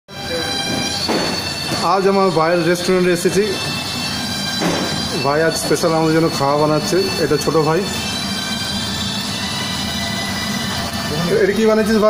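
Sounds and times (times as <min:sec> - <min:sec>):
constant high tones: 0:00.1 - 0:12.0
kitchen machine hum and whine: 0:00.1 - 0:12.0
man talking: 0:05.2 - 0:08.0, 0:11.1 - 0:12.0.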